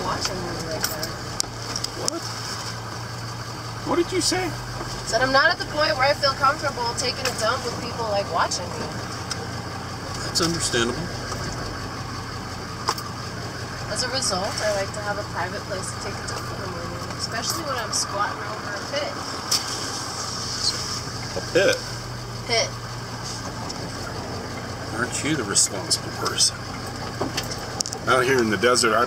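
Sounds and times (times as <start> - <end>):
vehicle engine and tyres on dirt: 0.0 - 29.0.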